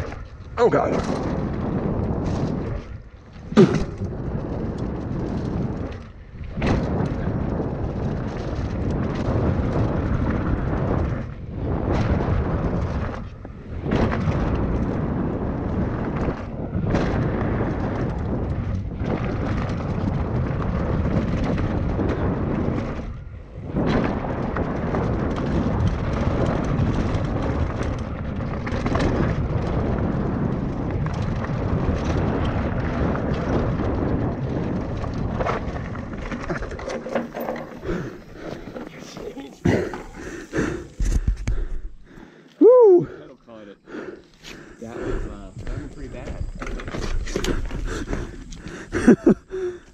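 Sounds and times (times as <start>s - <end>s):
bike tyres on dirt trail: 0.0s - 49.9s
wind buffeting microphone: 0.0s - 49.9s.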